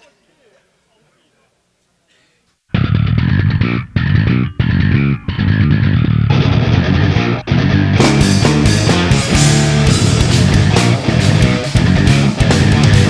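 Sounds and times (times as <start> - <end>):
heavy metal band playing: 2.7 - 13.0.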